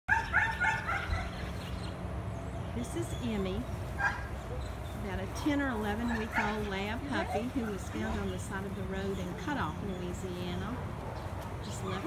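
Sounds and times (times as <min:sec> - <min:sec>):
puppy yipping: 0:00.1 - 0:01.7, 0:06.0 - 0:07.8.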